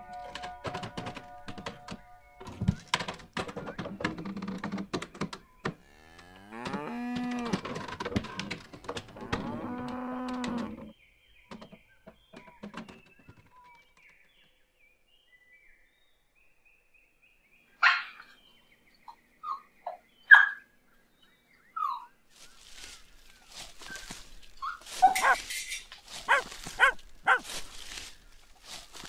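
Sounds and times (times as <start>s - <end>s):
wooden knocks and clatter: 0.0s - 14.3s
cattle mooing: 5.9s - 7.7s, 9.2s - 10.8s, 26.3s - 27.4s.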